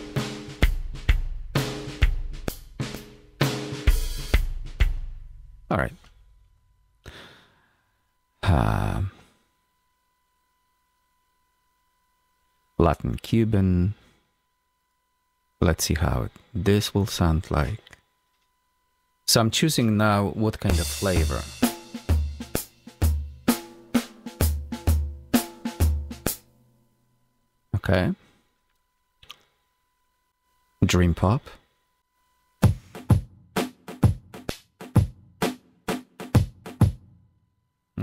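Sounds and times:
person sighing: 7.0s - 7.8s, 8.4s - 9.4s.

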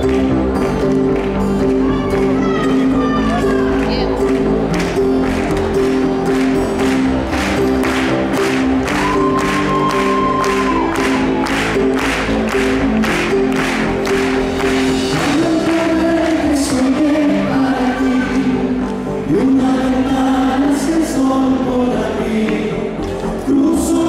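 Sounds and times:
sustained keyboard chords: 0.0s - 24.0s
voices from band and crowd: 1.6s - 6.1s
steady drum beat: 4.8s - 17.2s.

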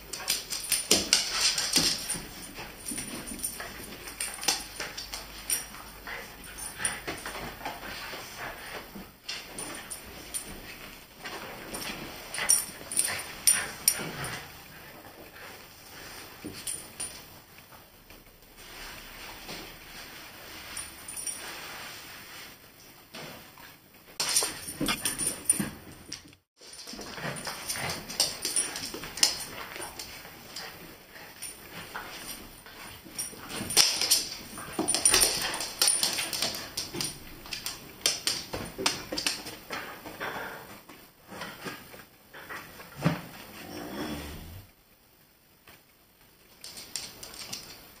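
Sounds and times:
dogs scuffling: 0.0s - 17.3s, 24.2s - 43.5s
dog vocal sounds: 24.6s - 25.3s.

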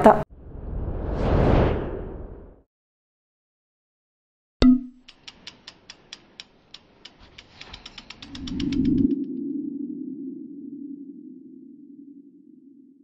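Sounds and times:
sharp ticks: 5.0s - 9.2s
low hum: 7.3s - 13.0s.

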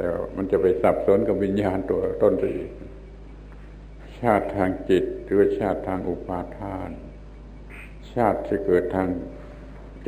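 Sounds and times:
man speaking: 0.0s - 3.0s, 4.0s - 7.2s, 8.0s - 9.4s
steady low hum: 0.0s - 10.0s.

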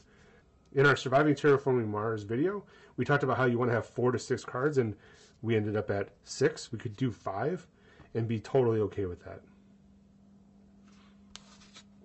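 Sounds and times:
cards rustling: 10.8s - 11.9s.

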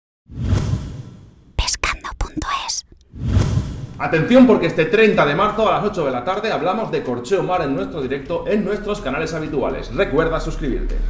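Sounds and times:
whoosh: 0.3s - 1.4s, 3.1s - 4.0s.

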